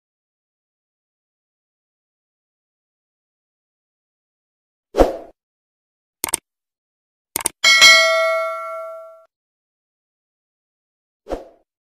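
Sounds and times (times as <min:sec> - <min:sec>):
double mouse clicks: 0:06.2 - 0:06.4, 0:07.4 - 0:07.6
bright bell ding: 0:07.6 - 0:09.3.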